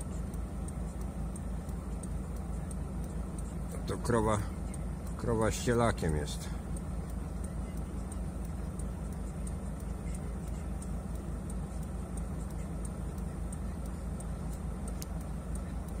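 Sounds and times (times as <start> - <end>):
faint regular ticking: 0.0 - 16.0
van engine idling: 0.0 - 16.0.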